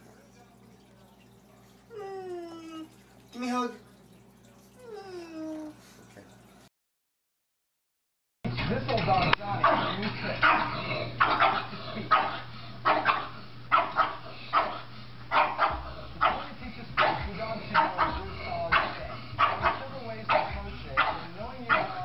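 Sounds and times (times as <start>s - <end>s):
steady low hum: 8.5s - 22.0s
dog barking: 9.6s - 22.0s.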